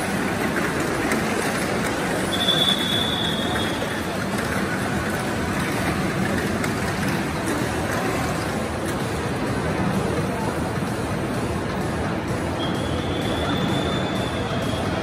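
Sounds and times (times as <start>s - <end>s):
high steady whine: 0.0s - 15.0s.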